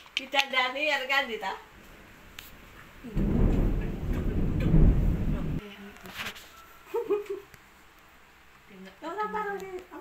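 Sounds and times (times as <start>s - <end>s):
low rumbling handling noise: 1.8s - 5.6s.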